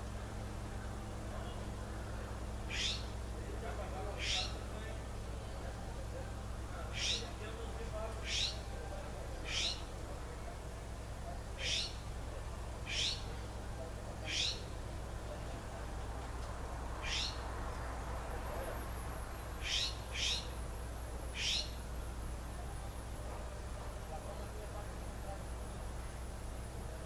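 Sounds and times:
steady low hum: 0.0 - 27.0
bird rising call: 2.7 - 3.1, 4.2 - 4.6, 6.9 - 7.4, 8.2 - 8.7, 9.4 - 9.9, 11.6 - 12.0, 12.9 - 13.3, 14.2 - 14.7, 17.0 - 17.4, 19.6 - 20.6, 21.3 - 21.8.

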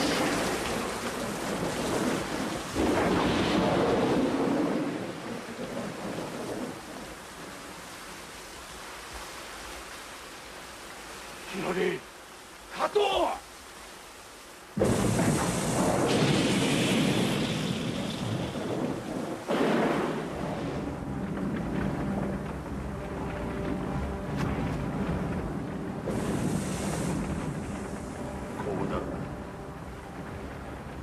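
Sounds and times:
thunder crash and rumbling: 0.0 - 7.6, 14.8 - 31.0
heavy rain: 0.0 - 31.0
dramatic score low tones: 19.6 - 31.0.

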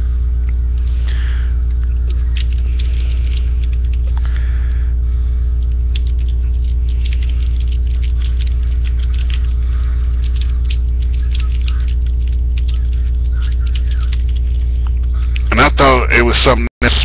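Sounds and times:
electrical hum with buzzing overtones: 0.0 - 17.0
faint crackles and clicks: 0.0 - 17.0.

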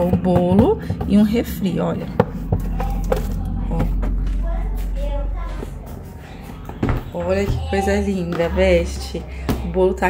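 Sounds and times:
faint voices: 0.0 - 10.0
low steady rumble: 0.0 - 10.0.

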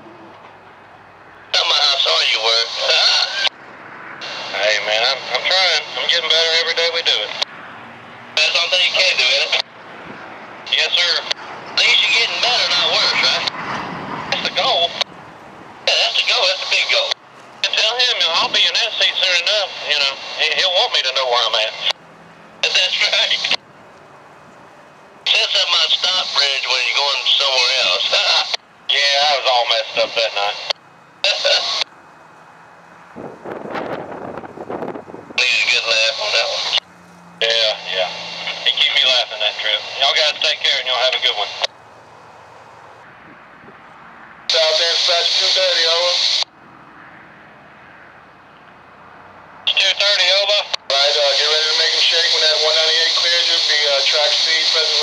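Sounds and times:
radio voice transmissions: 1.3 - 3.6, 4.2 - 7.5, 8.3 - 9.7, 10.6 - 13.6, 14.3 - 15.1, 15.8 - 22.0, 22.6 - 23.6, 25.2 - 31.9, 35.4 - 36.8, 37.4 - 41.8, 44.5 - 46.5, 49.6 - 55.0.

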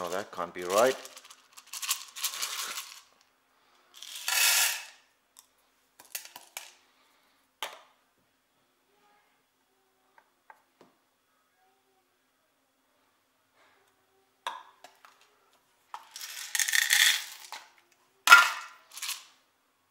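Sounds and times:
coffee beans rattling: 0.0 - 3.2, 3.9 - 5.0, 16.0 - 17.6, 18.3 - 19.3.

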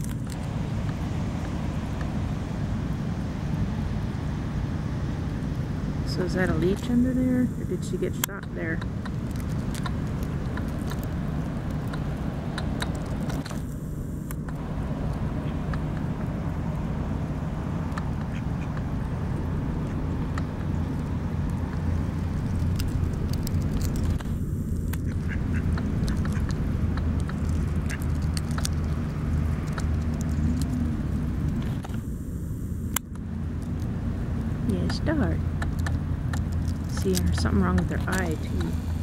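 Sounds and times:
steady low hum: 0.0 - 39.0
duck calling: 25.1 - 26.5.

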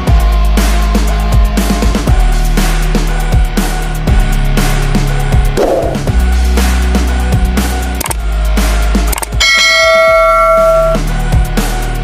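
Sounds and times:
background music with a beat: 0.0 - 12.0
notification bell ding: 9.4 - 11.0.

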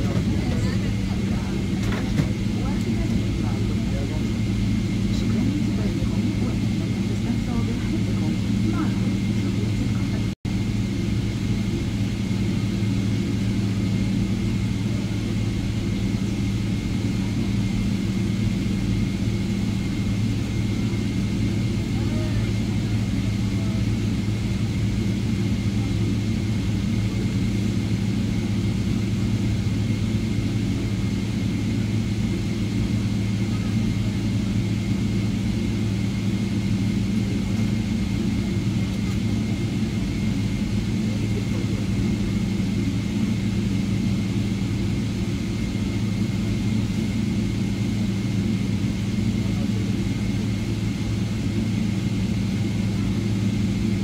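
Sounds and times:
airplane cabin hum: 0.0 - 54.0
jet engine high whine: 0.0 - 54.0.

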